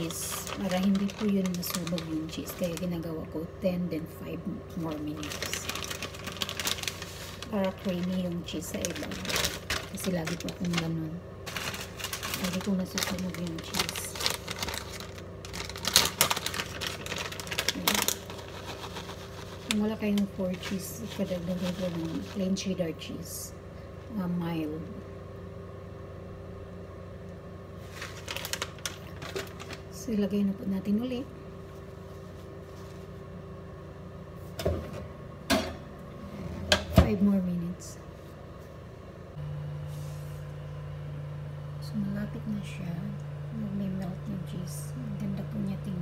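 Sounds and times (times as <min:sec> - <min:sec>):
plastic bag crinkling: 0:00.0 - 0:03.0, 0:04.7 - 0:22.7, 0:27.8 - 0:30.0
steady background hum: 0:00.0 - 0:46.0.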